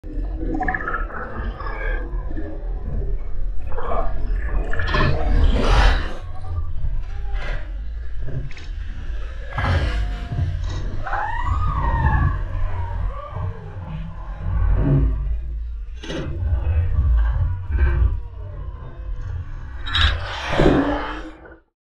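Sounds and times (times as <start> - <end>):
heavy low rumble: 2.4 - 21.5.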